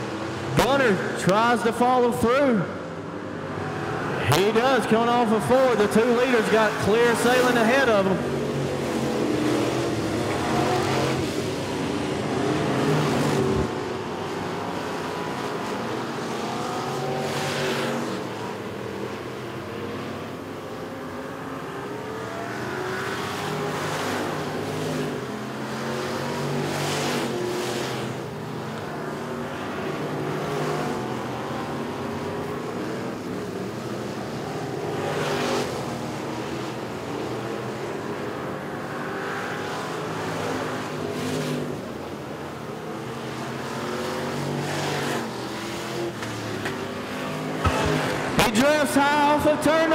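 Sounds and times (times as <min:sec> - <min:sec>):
race car engines passing: 0:00.0 - 0:49.9.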